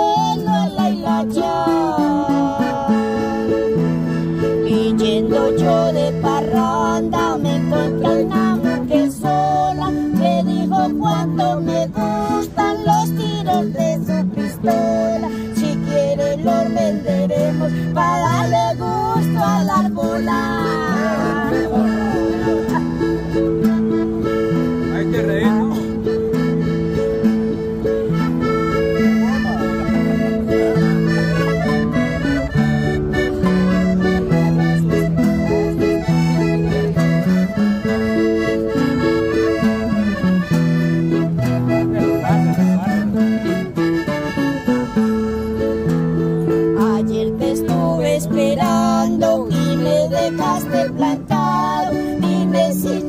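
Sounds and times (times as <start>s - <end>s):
accordion melody: 0.0s - 53.0s
strummed acoustic guitars: 0.0s - 53.0s.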